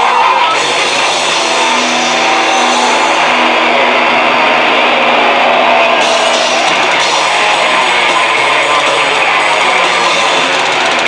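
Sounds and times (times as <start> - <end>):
death metal band playing live: 0.0 - 11.0.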